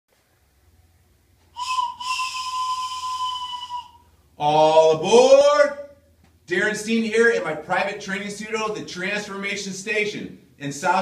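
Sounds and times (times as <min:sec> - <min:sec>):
wooden train whistle blasts: 0:01.5 - 0:04.2.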